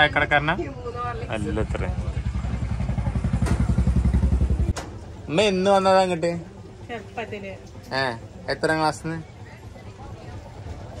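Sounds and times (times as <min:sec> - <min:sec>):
vehicle engine throbbing: 0:01.3 - 0:05.3.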